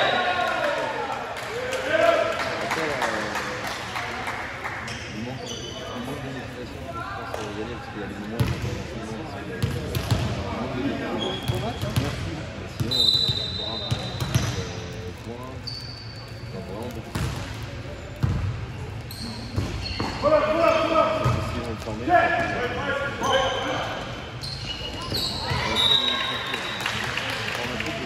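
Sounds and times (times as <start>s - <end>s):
short high squeaks: 15.6s - 16.4s
players' voices echoing: 16.5s - 28.0s.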